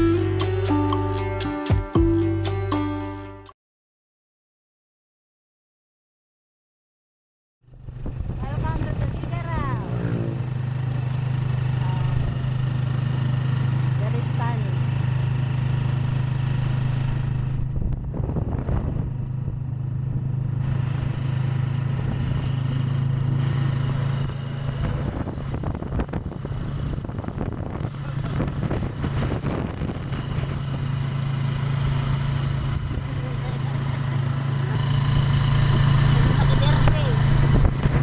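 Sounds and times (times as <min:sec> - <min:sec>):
motorcycle engine drone: 0:07.6 - 0:38.0
road and wind noise: 0:07.6 - 0:38.0.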